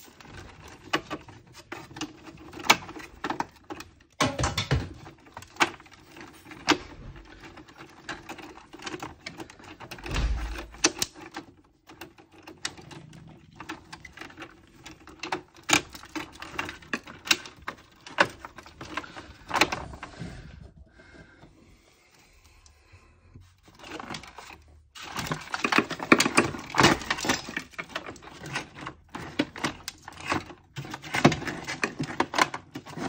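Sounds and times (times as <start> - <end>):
cables and plastic parts clicking: 0.0 - 21.6, 23.4 - 33.0.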